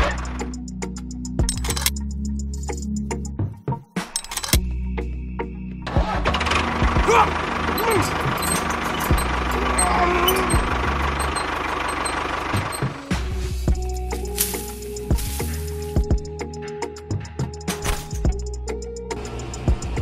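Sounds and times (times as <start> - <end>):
background music: 0.0 - 20.0
toy tractor engine noise: 6.4 - 16.0.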